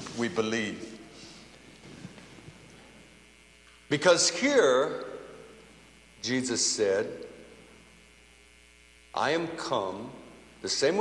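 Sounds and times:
person speaking: 0:00.0 - 0:01.4
faint electrical hum: 0:00.0 - 0:11.0.

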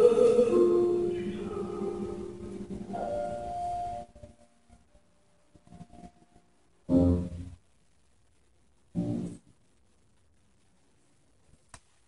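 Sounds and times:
baritone singing: 0:00.0 - 0:03.6
grand piano: 0:00.0 - 0:07.7.

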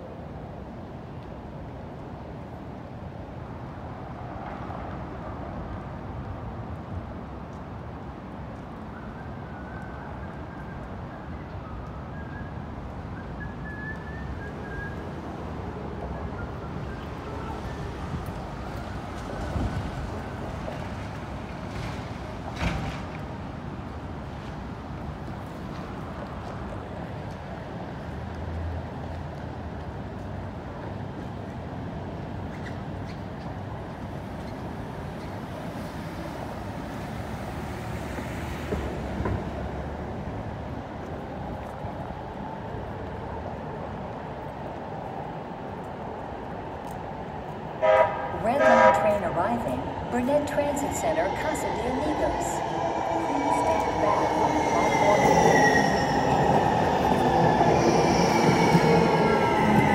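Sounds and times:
downtown street noise: 0:00.0 - 0:59.9
traffic rumble: 0:00.0 - 0:59.9
short loud horn toot: 0:47.8 - 0:49.0
wavering tone: 0:50.4 - 0:59.9.

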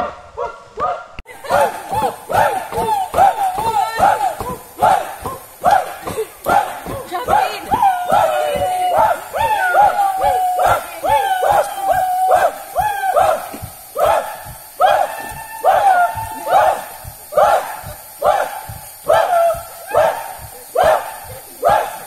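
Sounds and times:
group chanting shouted calls: 0:00.7 - 0:22.0
low thumps: 0:01.4 - 0:22.0.

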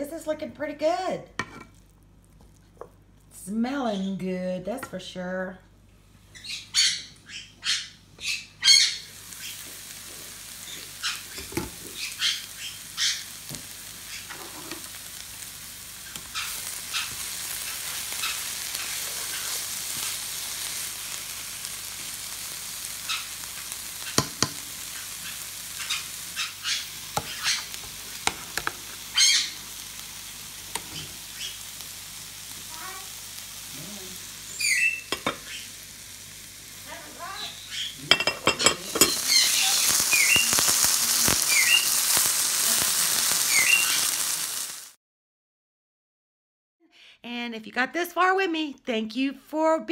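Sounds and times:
vegetables sizzling in a pan: 0:00.0 - 0:07.4, 0:08.1 - 0:45.0
spatula scraping a pan: 0:01.4 - 0:01.8, 0:14.1 - 0:14.9.

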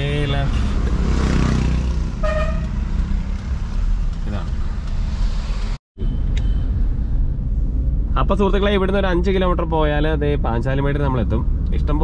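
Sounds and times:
car engine and road rumble: 0:00.0 - 0:12.0
car horn toot: 0:02.2 - 0:02.8.

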